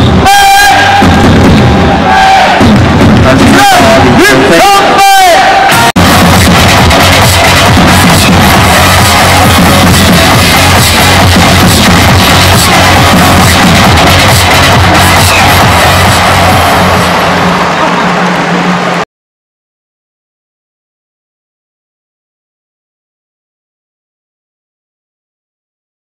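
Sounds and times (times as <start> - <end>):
thumping beat: 0.0 - 4.2, 5.7 - 17.7
cheer music over stadium speakers: 0.0 - 19.0
crowd noise: 0.0 - 19.1.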